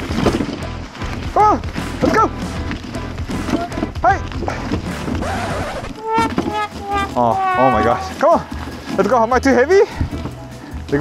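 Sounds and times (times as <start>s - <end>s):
background music: 0.0s - 11.0s
dog yelping: 5.9s - 8.2s.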